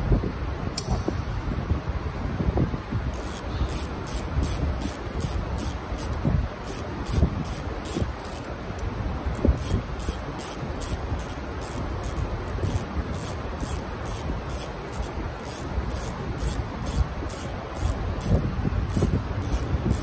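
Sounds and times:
ratchet wrench clicking: 0:03.1 - 0:20.0.

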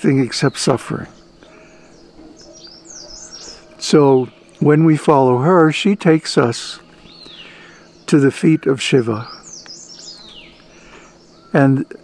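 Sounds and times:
birds chirping: 0:00.0 - 0:12.0
faint steady hum: 0:00.0 - 0:12.0.

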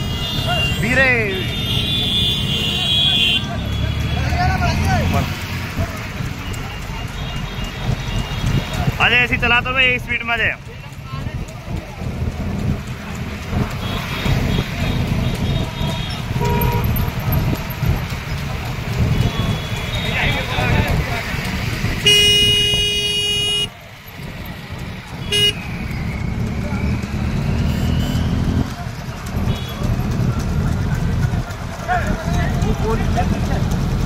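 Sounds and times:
motorcycles running in a pack: 0:00.0 - 0:34.0
vehicle horn: 0:01.4 - 0:03.9, 0:15.4 - 0:17.2, 0:22.0 - 0:23.7, 0:25.2 - 0:25.6, 0:27.6 - 0:28.4, 0:29.4 - 0:29.8.

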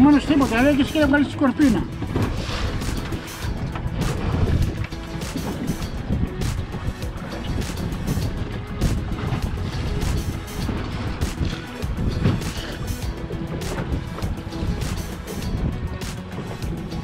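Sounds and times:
music: 0:00.0 - 0:17.0
water splashing against boat hull: 0:00.0 - 0:17.0
wind buffeting microphone: 0:00.0 - 0:17.0.

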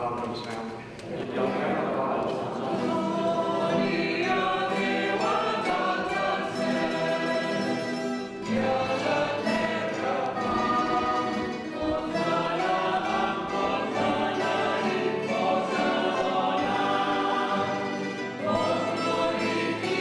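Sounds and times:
choir singing a hymn: 0:01.1 - 0:20.0
guitars accompanying: 0:01.2 - 0:20.0.

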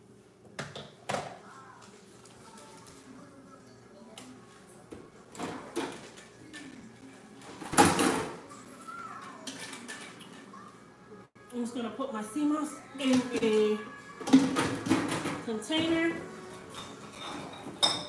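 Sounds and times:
kitchen knocks and clunks: 0:00.5 - 0:01.4, 0:04.9 - 0:06.7, 0:07.5 - 0:08.4, 0:14.2 - 0:18.0.

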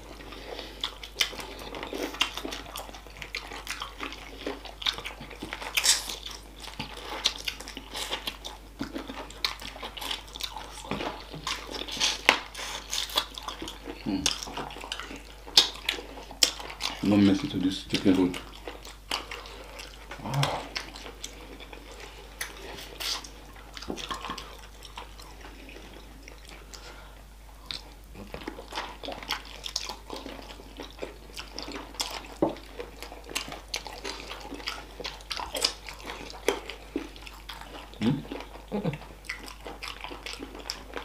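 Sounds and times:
people chewing and biting: 0:00.0 - 0:41.0.

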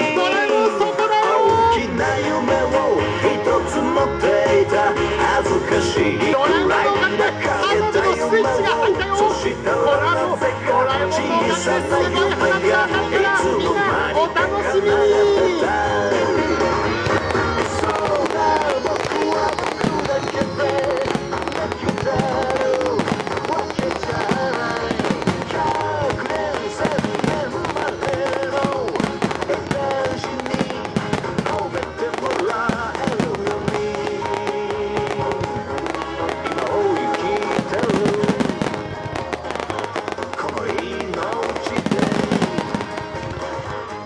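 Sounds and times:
pop song with singer: 0:00.0 - 0:44.0
fireworks bursting and crackling: 0:15.3 - 0:44.0.

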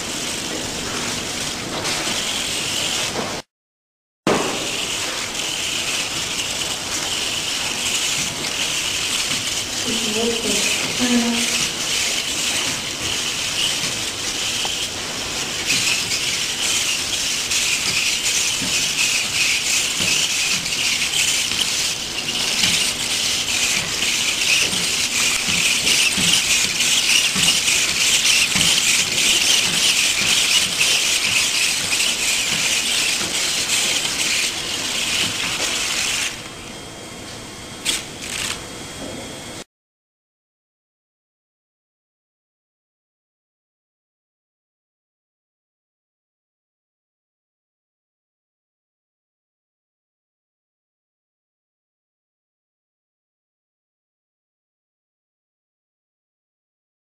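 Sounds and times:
servo motors whining: 0:15.6 - 0:36.6, 0:37.8 - 0:38.6.

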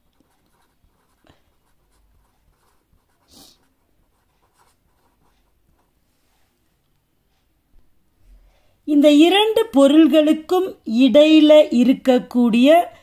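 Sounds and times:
marker scratching on paper: 0:00.0 - 0:06.5
marker hiss: 0:02.2 - 0:05.5.

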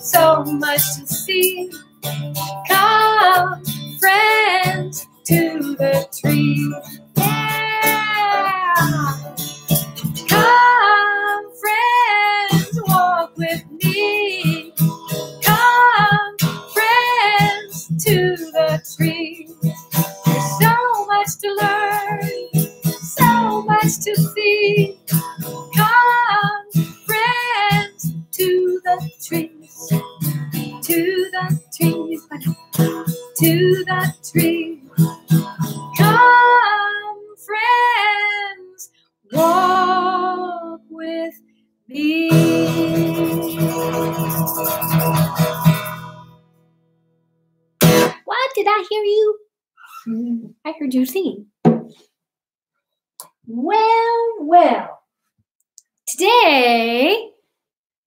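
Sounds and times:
woman singing: 0:00.0 - 0:09.4, 0:10.2 - 0:19.6, 0:20.2 - 0:44.3
strummed acoustic guitar: 0:00.0 - 0:38.4, 0:39.3 - 0:40.8, 0:42.0 - 0:46.6, 0:47.8 - 0:48.3.

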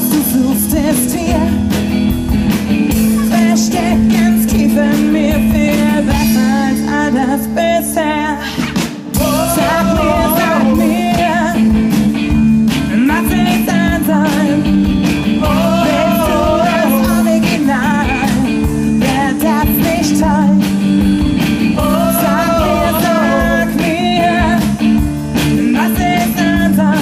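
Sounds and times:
bass guitar: 0:00.0 - 0:27.0
drum kit: 0:00.0 - 0:27.0
electric guitar: 0:00.0 - 0:27.0
woman singing with vibrato: 0:03.1 - 0:08.6, 0:09.2 - 0:11.9, 0:12.9 - 0:14.7, 0:15.4 - 0:20.6, 0:21.8 - 0:24.8, 0:25.5 - 0:27.0.

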